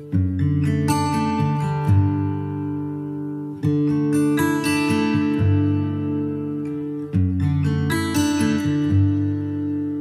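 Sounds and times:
plucked guitar notes: 0.0s - 10.0s.

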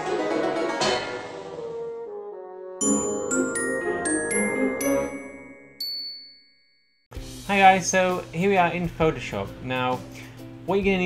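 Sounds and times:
mallet percussion and brass notes: 2.8s - 6.3s.

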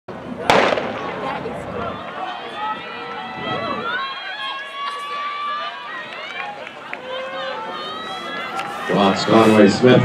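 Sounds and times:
crowd voices: 0.1s - 10.0s
starting gun bang: 0.5s - 1.1s.

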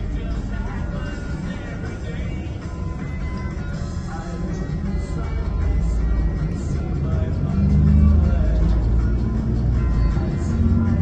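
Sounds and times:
background music: 0.0s - 11.0s
bus rumbling: 0.0s - 11.0s.

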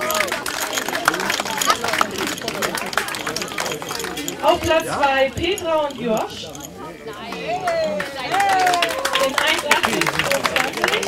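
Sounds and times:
small crowd clapping: 0.0s - 5.0s, 7.1s - 11.0s
voices talking: 0.0s - 11.0s.

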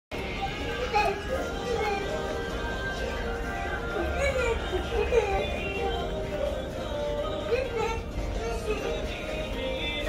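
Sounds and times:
faint background music: 0.1s - 10.0s
young child's voice: 0.4s - 2.4s, 7.4s - 9.2s.

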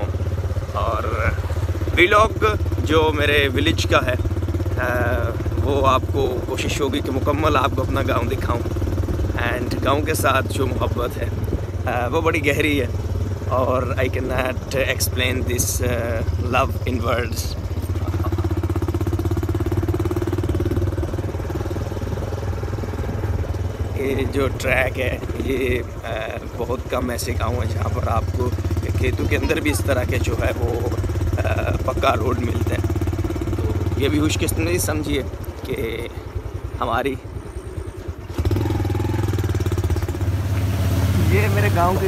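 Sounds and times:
small engine running: 0.0s - 42.0s.

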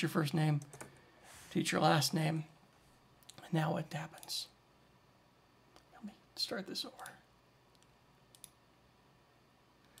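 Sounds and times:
faint clicks: 7.0s - 8.6s.

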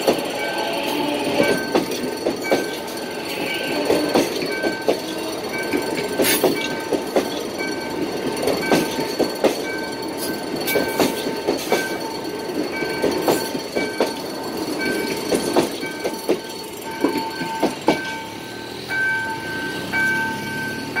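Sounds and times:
crossing signal warning tone: 0.0s - 21.0s
train wheels clacking over rail joints: 0.0s - 21.0s.

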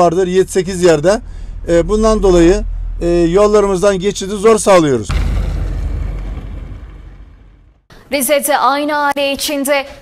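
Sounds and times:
low rumbling noise: 0.0s - 8.0s.

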